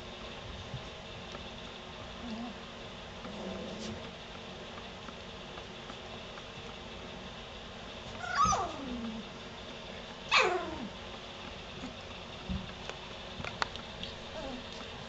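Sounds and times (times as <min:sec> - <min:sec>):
puppy crying: 0:08.2 - 0:09.2, 0:10.3 - 0:10.9.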